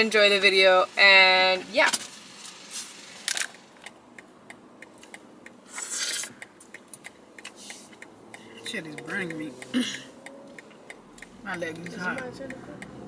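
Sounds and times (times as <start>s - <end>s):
hissy rubs: 5.7s - 6.4s, 7.4s - 8.1s.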